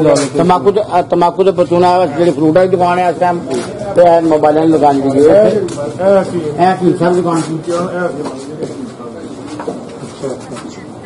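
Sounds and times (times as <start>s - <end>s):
man talking indistinctly: 0.0s - 11.0s.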